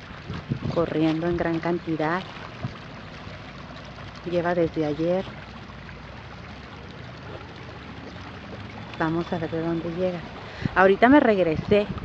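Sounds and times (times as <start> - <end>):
water rushing along creek bed: 0.0 - 12.0.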